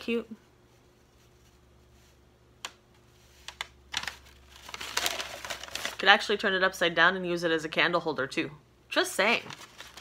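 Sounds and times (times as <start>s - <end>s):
paper wrapping rustling: 3.1s - 6.2s, 9.3s - 10.0s.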